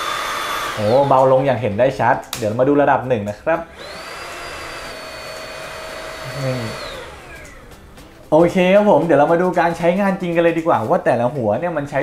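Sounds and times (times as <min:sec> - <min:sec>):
handheld vacuum motor whine: 0:00.0 - 0:01.7, 0:03.7 - 0:07.9.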